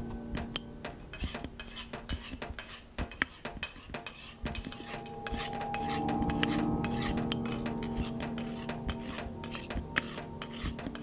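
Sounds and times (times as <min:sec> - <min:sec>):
knife scraping against metal: 0:00.5 - 0:11.0.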